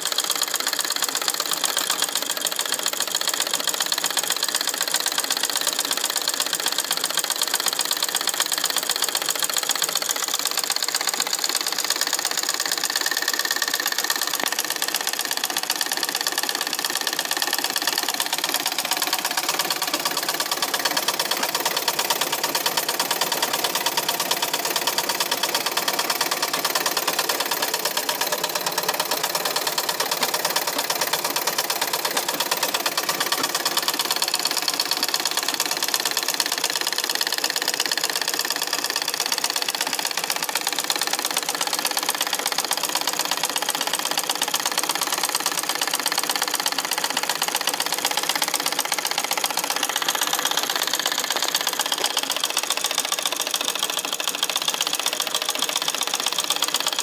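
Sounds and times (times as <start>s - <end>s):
treadle sewing machine clatter: 0.0s - 57.0s.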